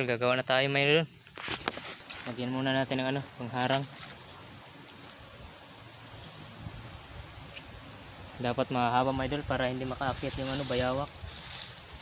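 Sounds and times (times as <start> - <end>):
rustling in dry leaves: 1.2 - 12.0.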